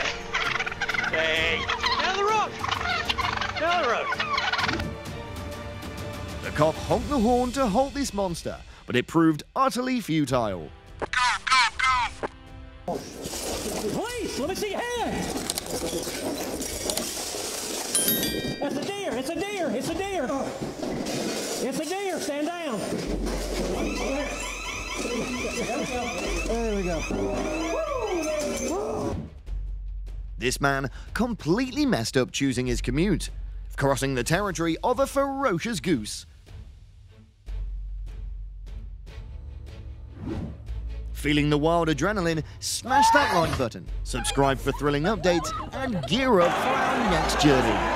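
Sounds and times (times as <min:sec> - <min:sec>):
turkeys gobbling: 0:00.0 - 0:05.0, 0:11.1 - 0:12.3, 0:23.4 - 0:29.0
electronic alarm chirping: 0:23.7 - 0:28.7
people's voices: 0:42.9 - 0:47.9.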